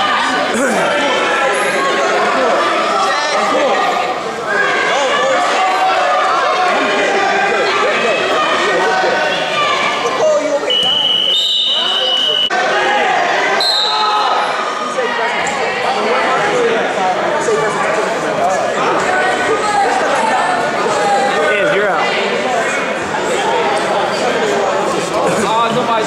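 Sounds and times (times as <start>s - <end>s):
spectators chattering: 0.0s - 26.0s.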